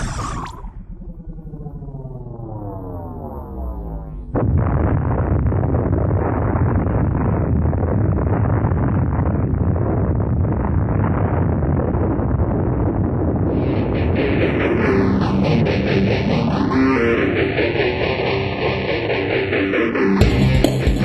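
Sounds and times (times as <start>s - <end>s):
dull rumbling noise: 0.0s - 21.0s
explosion blast: 3.4s - 18.3s
rock music: 13.5s - 21.0s.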